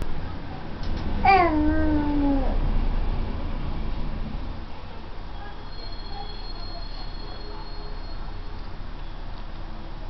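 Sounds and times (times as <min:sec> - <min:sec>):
baby cooing: 0:01.2 - 0:02.6.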